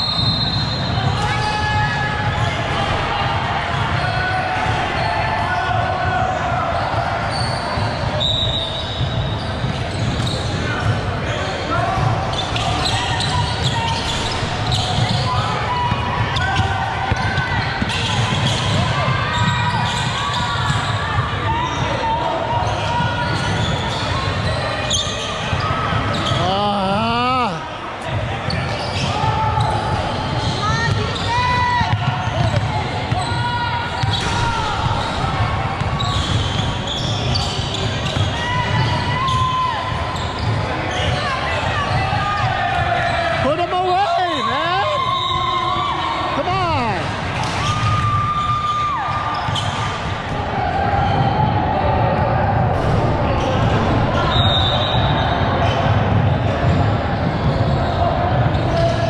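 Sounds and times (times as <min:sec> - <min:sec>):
shoe squeaks: 0:00.0 - 0:02.6, 0:07.3 - 0:11.6, 0:12.3 - 0:21.0, 0:22.6 - 0:26.6, 0:28.4 - 0:42.0, 0:47.6 - 0:50.0
people calling out: 0:26.1 - 0:27.8.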